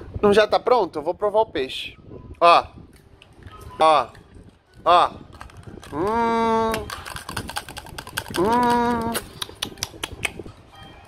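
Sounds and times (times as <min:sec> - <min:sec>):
man humming: 0:08.3 - 0:09.4.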